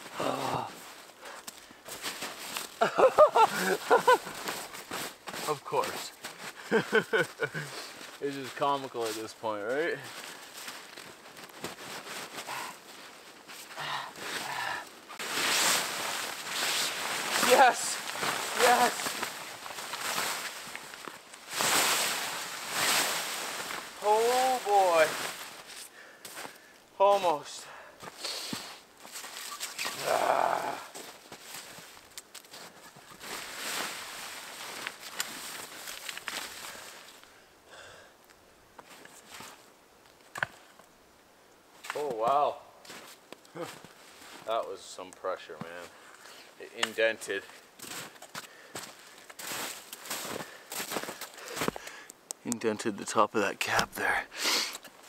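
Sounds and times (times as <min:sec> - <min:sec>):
tent fabric rustling and scraping: 0:03.5 - 0:14.4, 0:15.1 - 0:25.9, 0:28.1 - 0:37.2
wordless vocal sounds: 0:29.9 - 0:31.0, 0:53.4 - 0:54.4.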